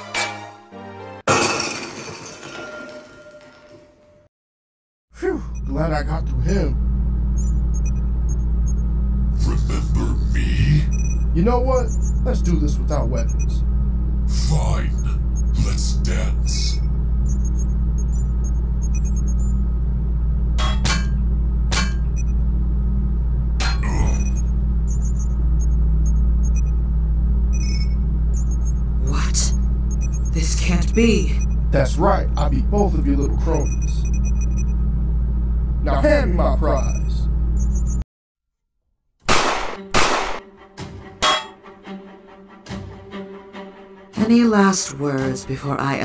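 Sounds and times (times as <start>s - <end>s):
low hum: 5.2s - 38.0s
low rumbling drone: 5.2s - 38.0s
loud ringing metallic hits: 20.5s - 22.2s, 41.2s - 41.6s.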